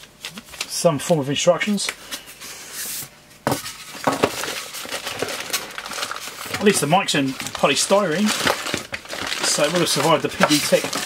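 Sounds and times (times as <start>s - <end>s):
scraping of cardboard and polystyrene: 2.4s - 11.0s.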